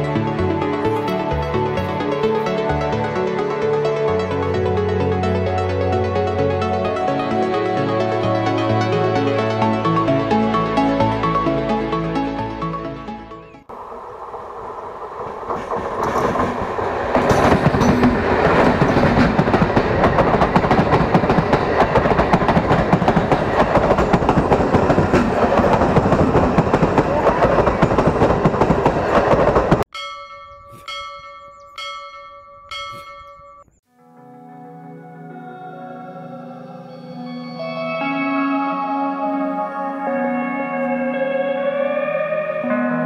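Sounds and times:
music: 0.0s - 13.7s, 33.9s - 43.0s
train wheels clattering on rails: 13.7s - 29.9s.

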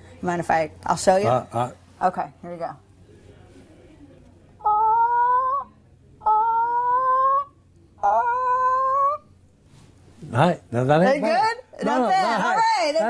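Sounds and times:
woman imitating turkey call: 4.6s - 7.4s, 8.0s - 9.2s.

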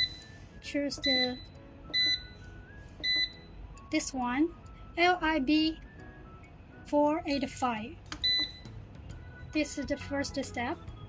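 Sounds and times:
short electronic beeps: 0.0s - 0.4s, 1.0s - 3.6s, 8.2s - 8.7s.

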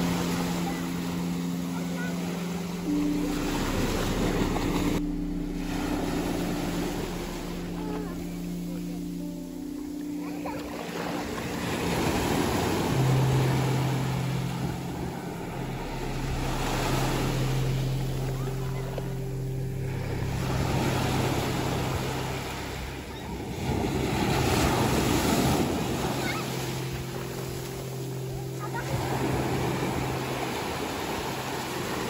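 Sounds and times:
steady low hum: 0.0s - 11.5s, 12.6s - 24.9s
sea surf breaking: 0.0s - 32.0s.

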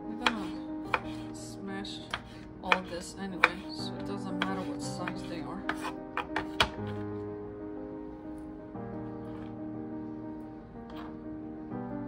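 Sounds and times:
background music: 0.0s - 12.0s
knife slicing tomato: 0.2s - 1.3s, 4.4s - 7.0s
knife knocking on wooden board: 4.4s - 6.8s.

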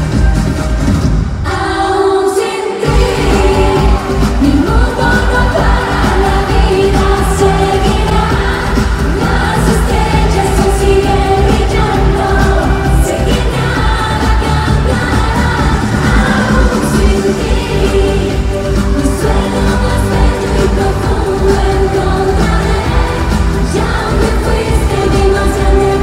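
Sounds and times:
live pop dance music: 0.0s - 26.0s
person singing: 1.4s - 26.0s.

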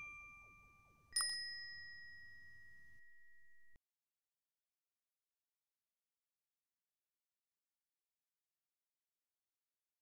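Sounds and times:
bell-like ding: 0.0s - 3.8s.

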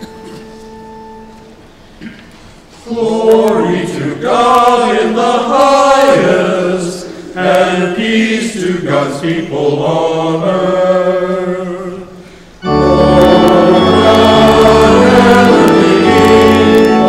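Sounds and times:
congregation chanting together: 2.7s - 17.0s.

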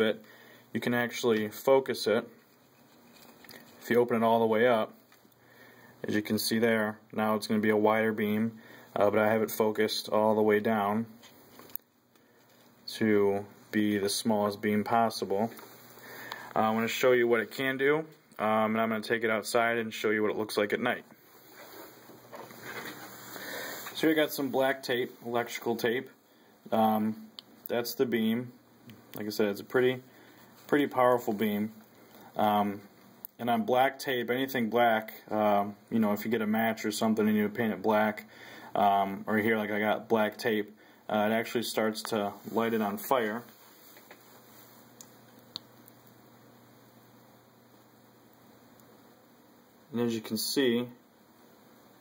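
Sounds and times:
faint hum and hiss: 0.0s - 52.0s
handling rustle and scrape: 2.4s - 4.0s, 21.2s - 25.3s, 42.2s - 45.0s.

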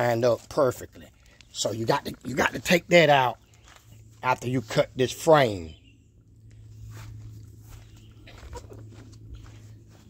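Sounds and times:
steady low hum: 0.0s - 10.0s
footsteps on grass and dirt: 0.3s - 5.7s, 6.4s - 10.0s.

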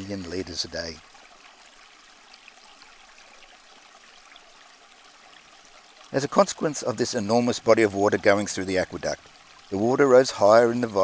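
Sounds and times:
creek trickling over rocks: 0.0s - 11.0s.

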